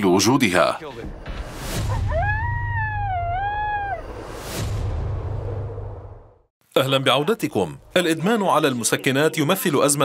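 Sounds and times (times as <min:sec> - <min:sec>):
rising whoosh: 0:01.4 - 0:06.5
wolf howling: 0:01.9 - 0:04.2.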